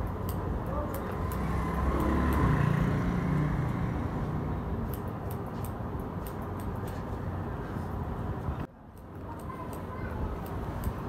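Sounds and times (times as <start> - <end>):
passing vehicle engine rumble: 0.0 - 8.7.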